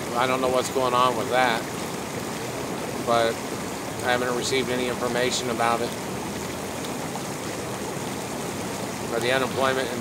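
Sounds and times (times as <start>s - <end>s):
hot tub water bubbling: 0.0s - 10.0s.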